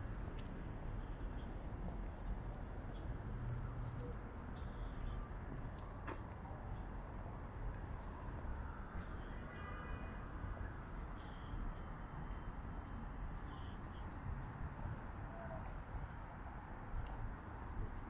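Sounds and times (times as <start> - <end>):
distant traffic rumble: 0.0 - 18.0.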